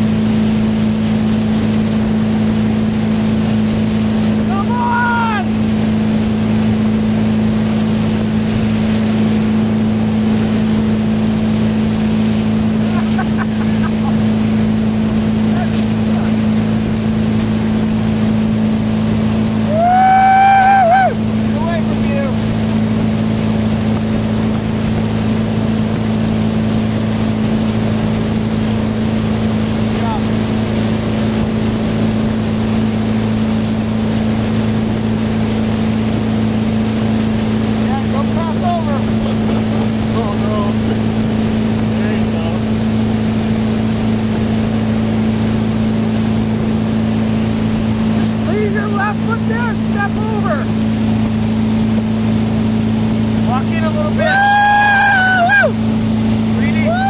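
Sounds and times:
boat engine running: 0:00.0 - 0:57.0
person yelling: 0:04.4 - 0:05.5, 0:19.6 - 0:22.1, 0:53.7 - 0:55.8, 0:56.6 - 0:57.0.

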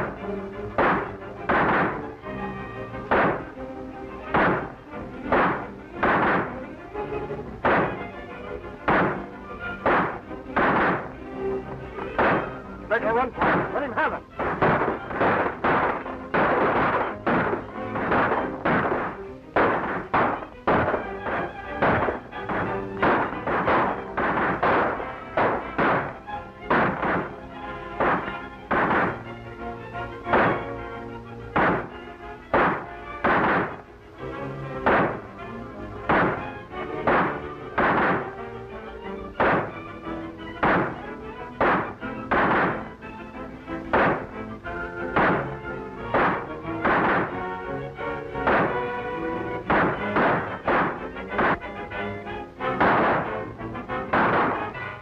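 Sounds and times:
gunshots: 0:00.0 - 0:03.6, 0:04.2 - 0:29.4, 0:30.0 - 0:30.9, 0:31.5 - 0:52.0, 0:52.6 - 0:55.0
dramatic orchestral music: 0:00.0 - 0:55.0.

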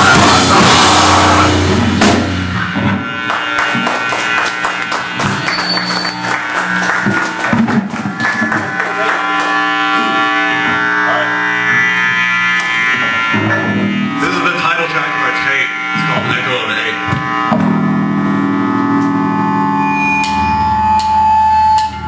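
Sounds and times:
busy drumming: 0:00.0 - 0:10.2, 0:13.4 - 0:17.8
held guitar notes ringing: 0:00.0 - 0:22.0
live rock band playing: 0:00.0 - 0:22.0.

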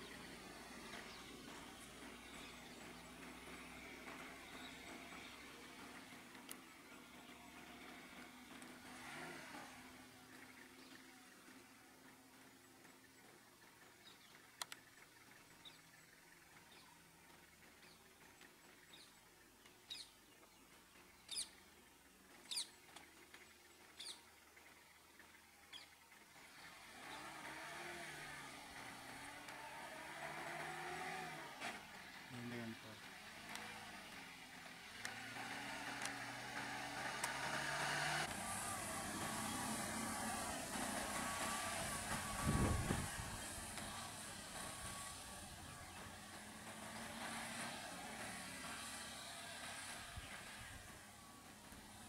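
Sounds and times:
vehicle engines running: 0:00.0 - 0:52.0
bird chirps: 0:10.2 - 0:27.2
faint voices: 0:32.2 - 0:33.3.

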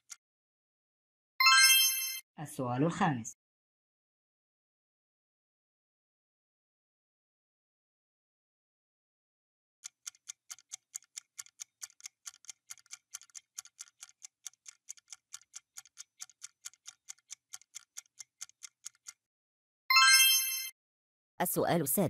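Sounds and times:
clock ticking: 0:09.8 - 0:19.2.

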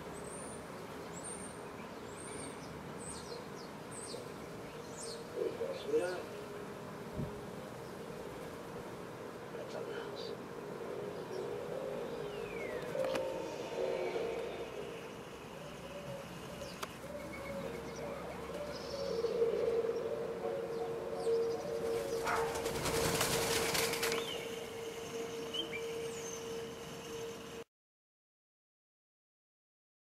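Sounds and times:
doves cooing: 0:05.0 - 0:26.7
wings flapping: 0:21.8 - 0:24.9.

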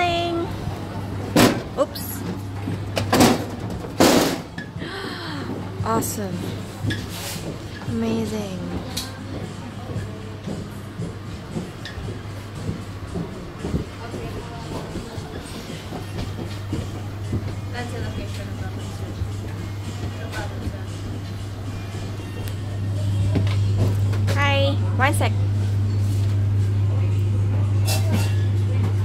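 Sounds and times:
boat machinery humming: 0:00.0 - 0:29.0
faint background music: 0:04.4 - 0:29.0.

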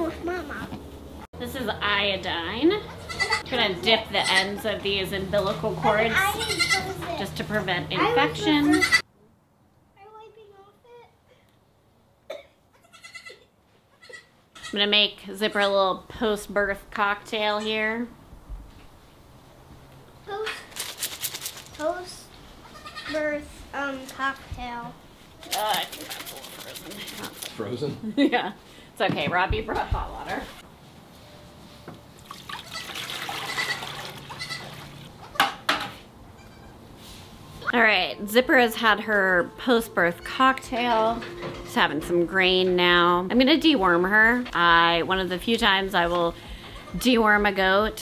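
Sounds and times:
goat kids bleating faintly: 0:02.9 - 0:03.5, 0:06.3 - 0:07.1, 0:08.5 - 0:09.0, 0:12.8 - 0:14.8, 0:22.6 - 0:23.2
water pouring and splashing: 0:25.4 - 0:27.5, 0:32.2 - 0:35.1.

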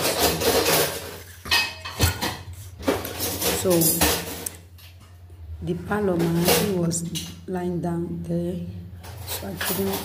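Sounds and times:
dishes and cutlery clattering: 0:00.0 - 0:05.0, 0:06.2 - 0:07.5, 0:09.0 - 0:10.0.

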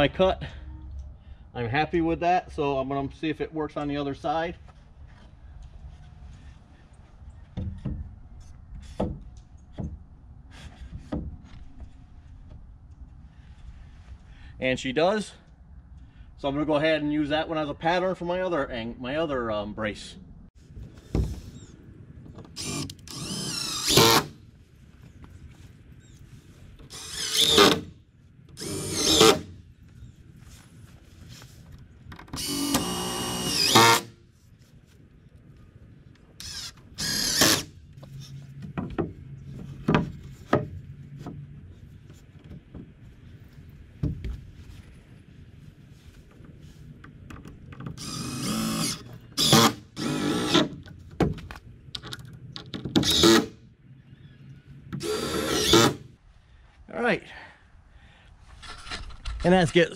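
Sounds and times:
cordless drill driving screws: 0:22.5 - 0:24.4, 0:26.9 - 0:27.9, 0:28.6 - 0:29.5, 0:32.4 - 0:34.1, 0:36.4 - 0:37.7, 0:48.0 - 0:50.7, 0:53.0 - 0:53.5, 0:55.0 - 0:56.0
knocks and handling noise: 0:38.0 - 0:48.0, 0:50.7 - 0:53.0.

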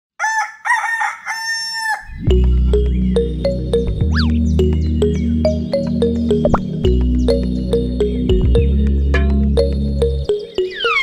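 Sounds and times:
rooster crowing: 0:00.2 - 0:02.1.

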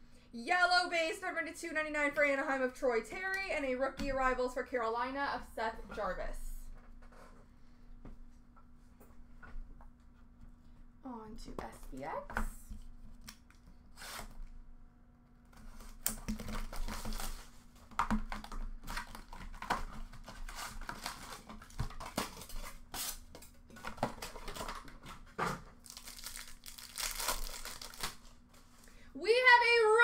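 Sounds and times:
foil wrappers crinkling: 0:15.8 - 0:17.7, 0:18.4 - 0:28.7
packaging torn open by hand: 0:25.8 - 0:28.2.

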